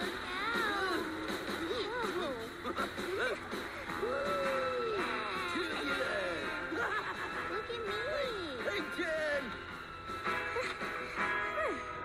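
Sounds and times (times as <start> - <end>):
background music: 0.0 - 12.0
cartoon voices whooping: 3.0 - 6.0.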